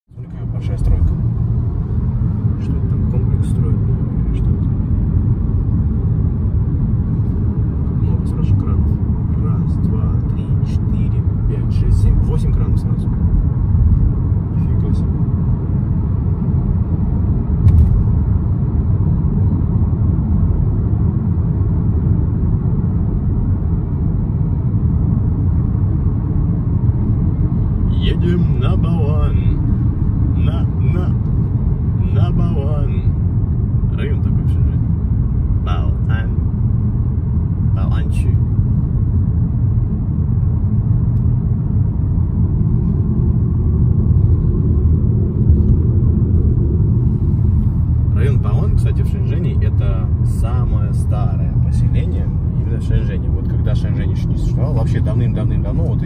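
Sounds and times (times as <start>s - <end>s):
car road rumble: 0.1s - 56.0s.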